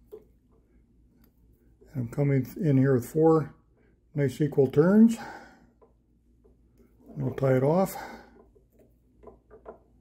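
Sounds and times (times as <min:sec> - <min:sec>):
fingers rustling thread and wire: 0:05.7 - 0:10.0.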